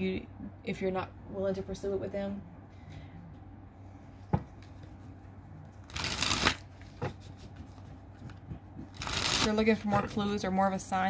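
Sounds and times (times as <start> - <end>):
cards being shuffled by hand: 4.5 - 10.4.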